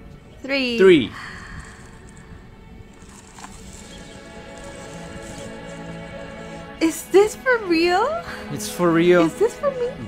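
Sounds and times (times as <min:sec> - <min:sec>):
background music with held notes: 0:00.0 - 0:10.0.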